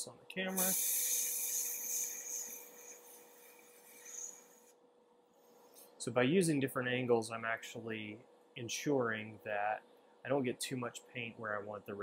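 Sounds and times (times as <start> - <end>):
airbrush hissing: 0.5 - 4.8.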